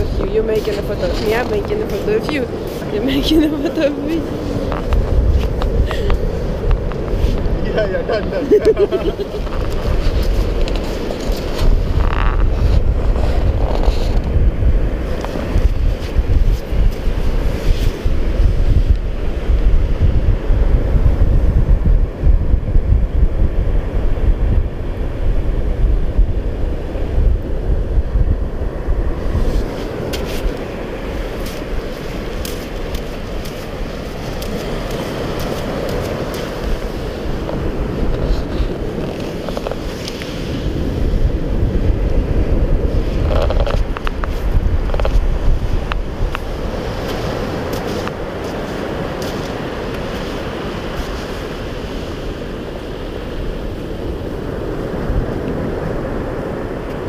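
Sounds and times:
small waves washing on sand: 0.0s - 57.0s
wind buffeting microphone: 0.0s - 57.0s.

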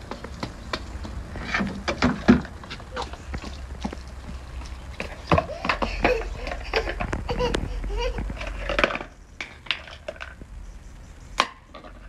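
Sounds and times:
plastic toys clicking in bucket: 5.2s - 10.4s.

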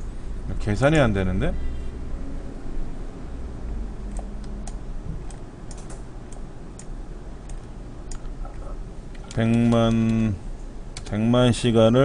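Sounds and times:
steady low hum: 0.0s - 12.0s
computer keyboard typing: 4.0s - 10.3s, 11.0s - 11.2s.

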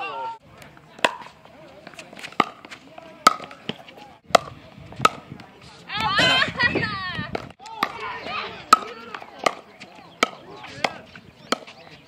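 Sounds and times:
paddles hitting plastic ball: 1.0s - 5.4s, 8.7s - 11.8s.

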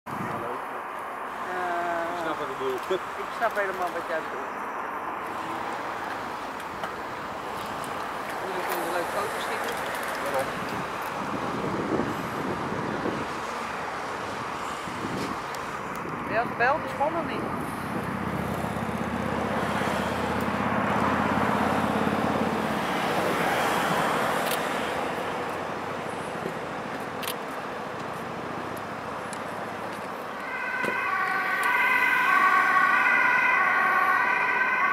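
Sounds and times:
street traffic hum: 0.0s - 34.9s
ambulance two-tone siren: 30.4s - 34.9s.

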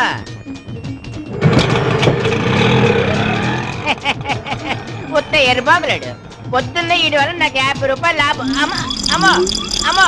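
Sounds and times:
auto-rickshaw engine running loudly: 1.2s - 5.0s.

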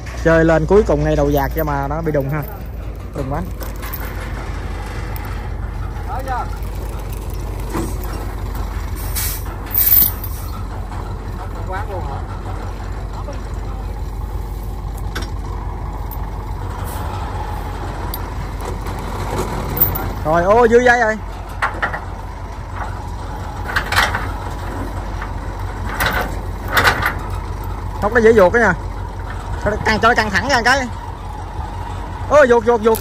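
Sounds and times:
diesel engine idling: 0.0s - 33.0s
loud hiss: 9.0s - 10.5s.

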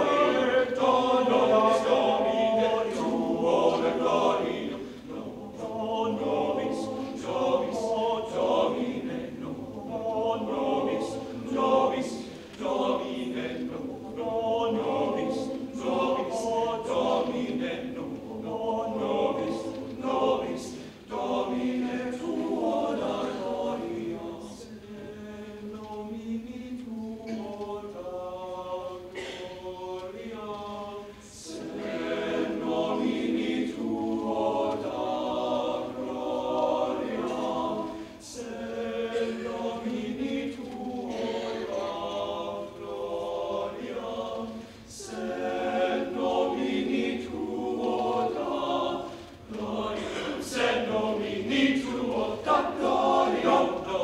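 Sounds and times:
male choir singing a cappella: 0.0s - 54.0s.

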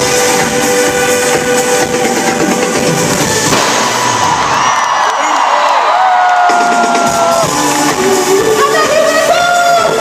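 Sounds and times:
live pop concert music: 0.0s - 10.0s
crowd cheering and screaming: 1.9s - 10.0s.

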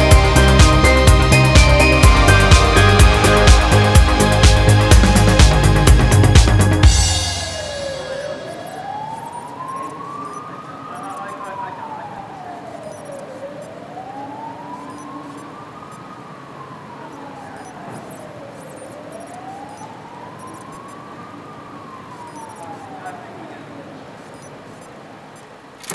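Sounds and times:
siren wailing: 6.8s - 25.1s.

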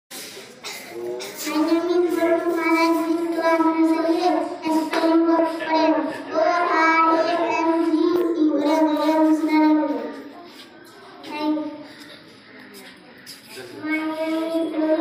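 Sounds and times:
young boy singing into microphone: 0.7s - 10.2s.

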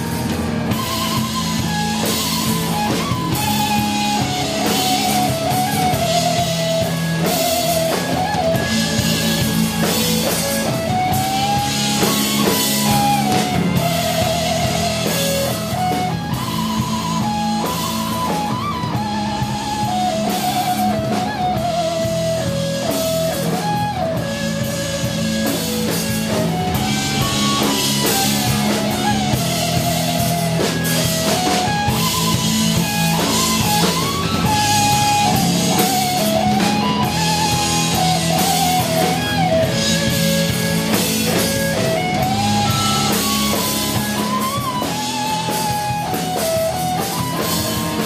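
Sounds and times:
drum kit: 0.0s - 48.0s
electric guitars: 0.0s - 48.0s.

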